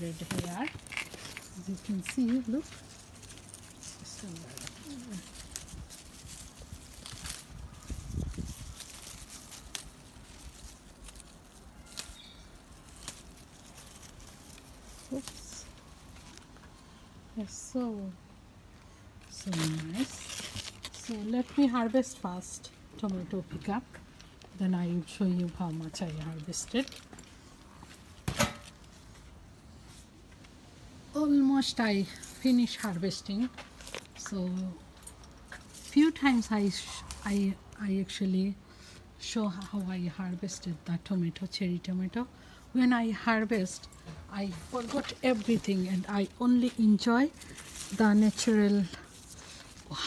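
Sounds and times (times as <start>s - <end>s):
plant leaves rustling: 0.0s - 18.2s, 19.1s - 50.0s.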